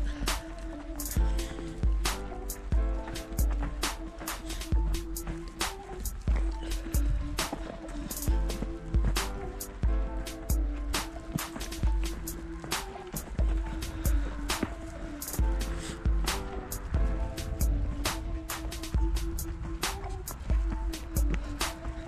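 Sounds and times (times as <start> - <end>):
background music with drums: 0.0 - 22.0.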